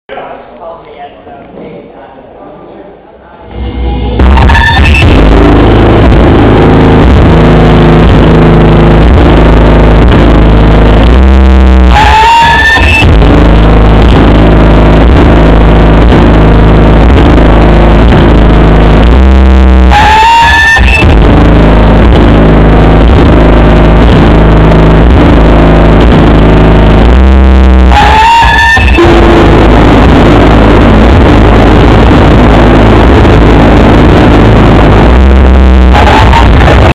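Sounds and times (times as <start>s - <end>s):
distorted noise music drone: 0.1s - 36.9s.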